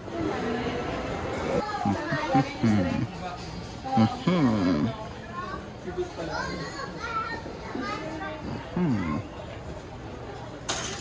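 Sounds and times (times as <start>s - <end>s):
background chatter of voices: 0.0s - 11.0s
high-pitched children's voices: 6.2s - 9.2s.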